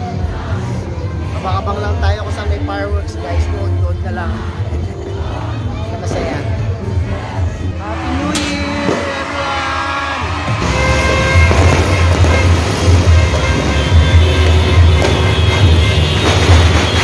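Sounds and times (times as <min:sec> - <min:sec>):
loud music with heavy bass: 0:00.0 - 0:17.0
fireworks bursting with sharp cracks: 0:10.4 - 0:17.0
held horn-like tones: 0:10.6 - 0:17.0.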